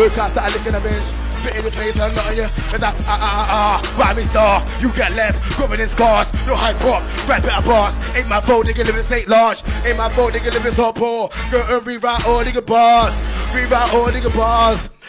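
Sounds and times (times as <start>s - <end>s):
grime beat with heavy bass: 0.0s - 14.8s
person rapping fast: 0.0s - 15.0s.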